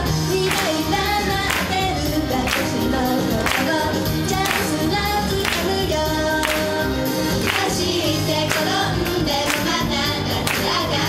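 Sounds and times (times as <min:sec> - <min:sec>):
female group singing in unison: 0:00.0 - 0:11.0
pop backing track: 0:00.0 - 0:11.0.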